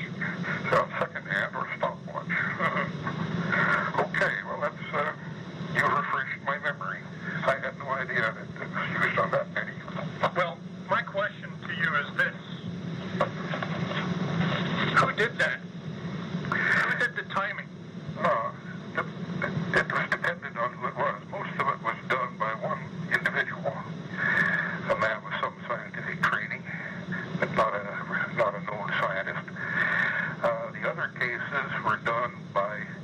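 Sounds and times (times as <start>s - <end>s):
man speaking on telephone: 0.0s - 12.5s, 14.8s - 15.7s, 16.5s - 33.0s
steady low hum: 0.0s - 33.0s.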